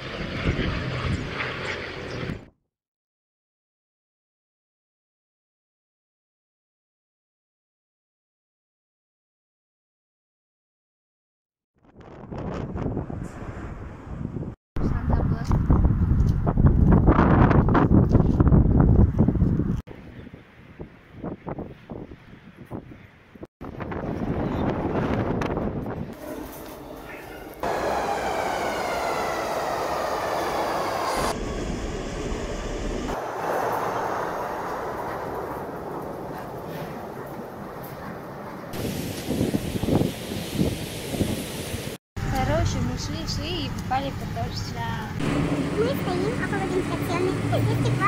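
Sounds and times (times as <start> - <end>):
wind on microphone: 0.0 - 2.5, 11.8 - 26.2, 27.6 - 42.0
train cars rumbling: 24.2 - 38.7, 42.4 - 48.0
electric train motor whine: 25.8 - 35.1, 45.2 - 46.9.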